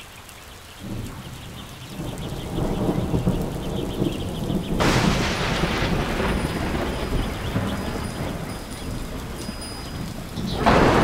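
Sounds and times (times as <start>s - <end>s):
rain hiss: 0.0s - 11.0s
thunder peal: 0.8s - 11.0s
thunder rumbling: 0.8s - 11.0s
thin high ringing tones: 6.3s - 10.5s.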